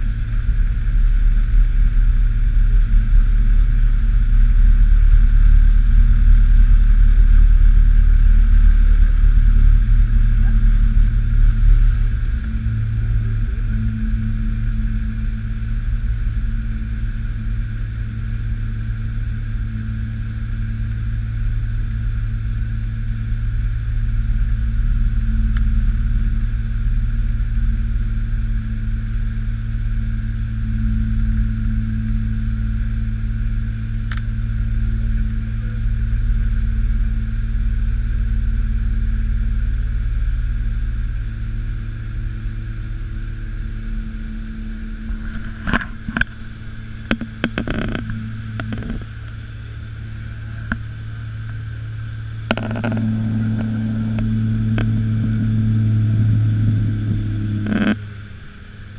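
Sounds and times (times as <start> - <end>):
turboprop engine drone: 0.0 - 58.9
sharp clicks and knocks: 47.0 - 49.1, 52.5 - 55.0.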